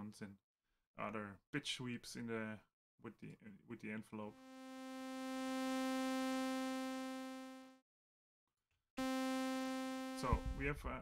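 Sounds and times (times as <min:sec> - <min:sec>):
buzzy sawtooth synthesizer note: 0:04.3 - 0:07.8, 0:09.0 - 0:11.0.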